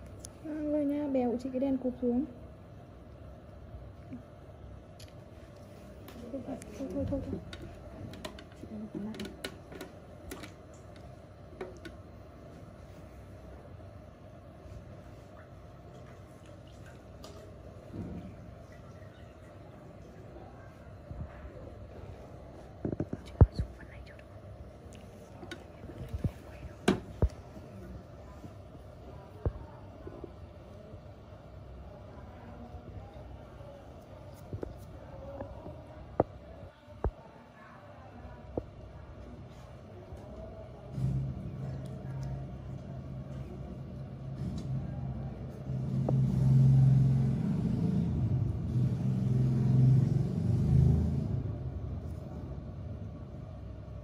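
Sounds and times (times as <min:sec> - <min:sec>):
faint whispered voice: 0:18.8 - 0:47.1.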